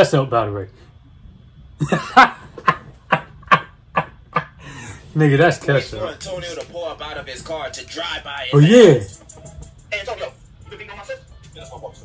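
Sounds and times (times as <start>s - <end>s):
man laughing in bursts: 1.8s - 5.0s.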